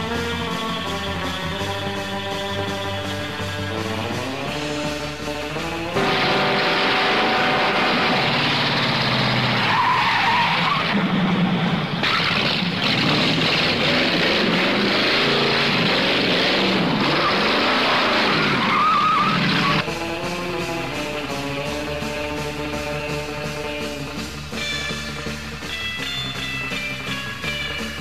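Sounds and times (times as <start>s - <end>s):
car engine running hard: 0.0s - 28.0s
tyre squeals: 9.6s - 11.0s, 17.0s - 19.8s.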